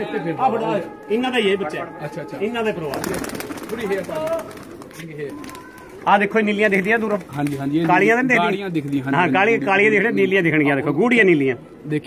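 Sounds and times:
man talking: 0.0 - 12.0
pigeons cooing: 2.6 - 6.0.

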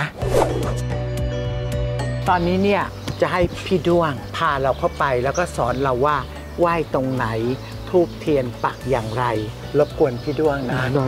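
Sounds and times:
background music steady chord: 0.2 - 11.0.

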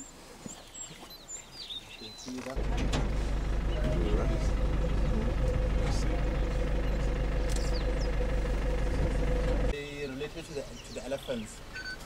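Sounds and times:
vehicle engine running: 2.6 - 9.7.

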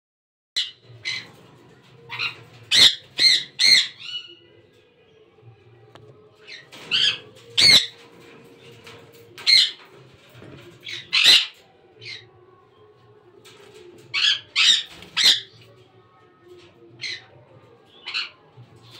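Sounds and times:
parrots squawking shrilly: 2.1 - 4.2, 6.9 - 8.0, 10.8 - 12.2.

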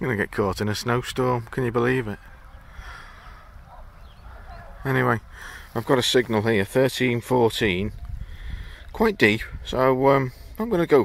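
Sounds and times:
man speaking: 0.0 - 2.3, 4.6 - 8.0, 8.9 - 11.0
faint distant bird calls: 0.2 - 10.6
wind rumble on microphone: 7.6 - 9.8.

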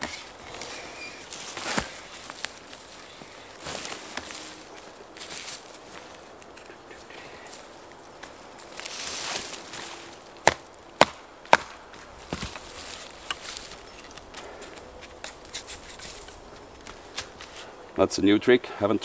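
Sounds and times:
short rustle: 0.0 - 6.2.

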